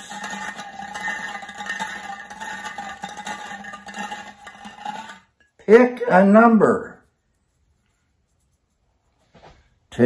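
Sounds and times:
balls rattling in a glass jar: 0.0s - 5.5s.

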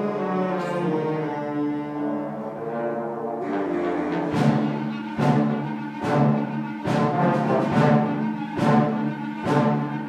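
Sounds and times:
wind band brass chords: 0.0s - 10.0s.

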